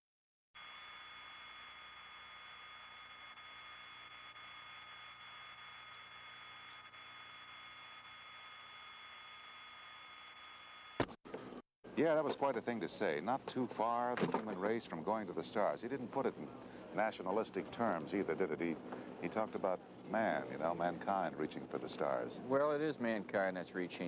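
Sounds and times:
high-pitched whine tones: 0.6s - 11.1s.

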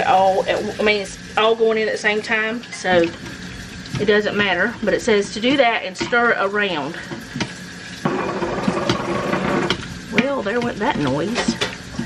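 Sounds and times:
machine humming: 7.9s - 12.0s.

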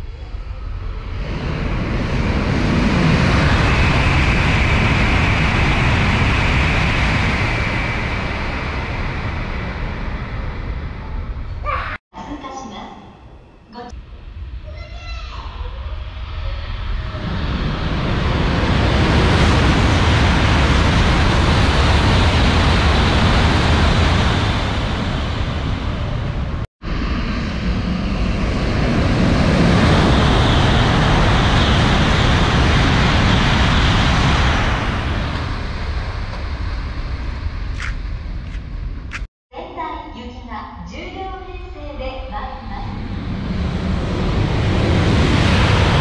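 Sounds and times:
trains passing at high speed: 0.0s - 12.0s, 14.0s - 39.3s, 41.6s - 46.0s.

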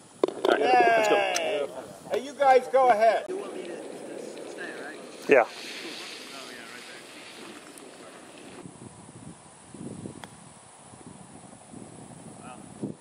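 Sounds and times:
putter striking golf ball: 0.2s - 1.5s
wind on microphone: 3.4s - 13.0s.

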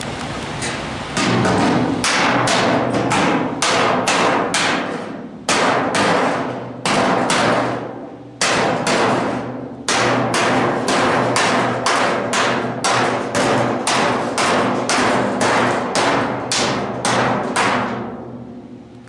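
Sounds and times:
hammer striking steel: 1.2s - 18.1s.

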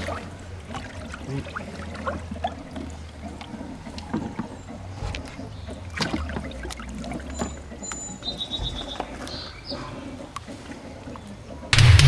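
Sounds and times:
water sloshing in hot tub: 0.0s - 11.8s.

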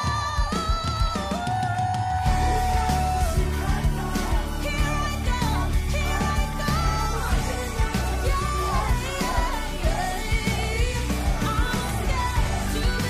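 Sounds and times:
band backing music with drum beat: 0.0s - 13.0s
pop singing: 0.0s - 13.0s.

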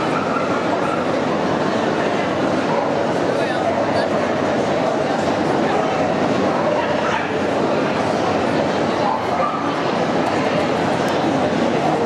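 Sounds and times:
indoor crowd hubbub: 0.0s - 12.0s.

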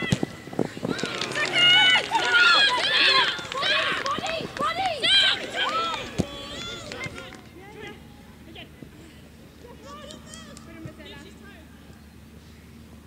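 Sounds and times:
women shouting: 1.2s - 7.0s.

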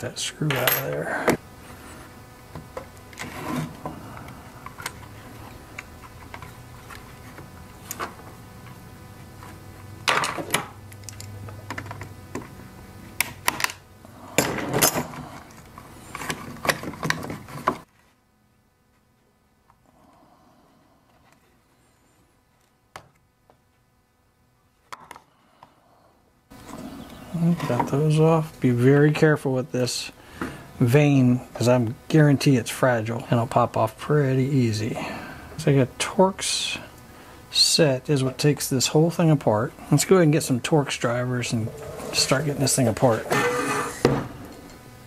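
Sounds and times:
steady background hum: 0.0s - 45.0s.

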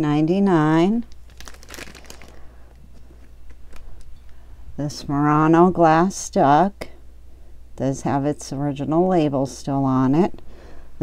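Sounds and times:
plastic bag crinkling: 1.0s - 4.4s.

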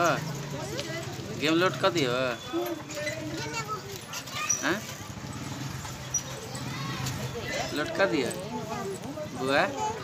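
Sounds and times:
young child talking: 3.4s - 4.6s.

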